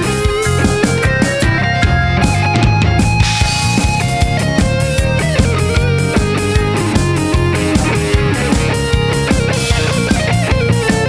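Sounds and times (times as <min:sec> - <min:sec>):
electric guitar: 0:00.0 - 0:11.0
keyboard: 0:00.0 - 0:11.0
steady drum beat: 0:00.0 - 0:11.0.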